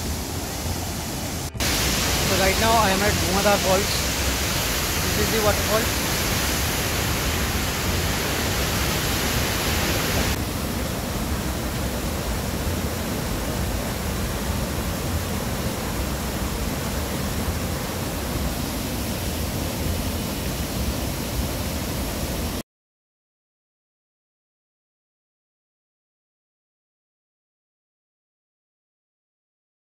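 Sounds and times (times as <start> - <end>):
waterfall rushing: 0.0 - 22.6.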